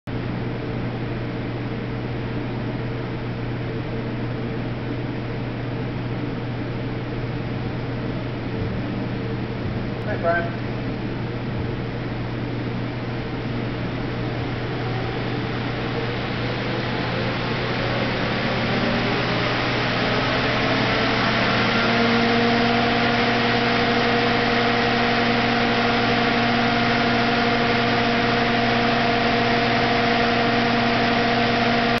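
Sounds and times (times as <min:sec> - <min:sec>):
electric cooling fan humming: 0:00.1 - 0:32.0.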